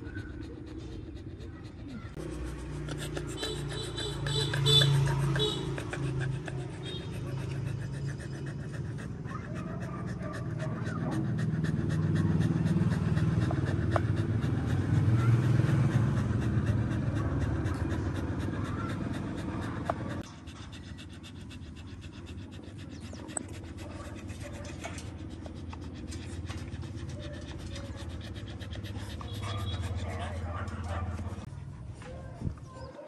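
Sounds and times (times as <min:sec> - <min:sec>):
dog panting: 0:00.0 - 0:33.0.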